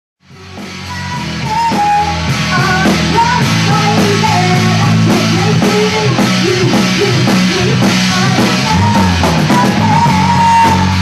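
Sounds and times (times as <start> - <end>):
bass guitar: 0.2 - 11.0
drums: 0.2 - 11.0
electric guitar: 0.2 - 11.0
woman singing: 0.3 - 11.0.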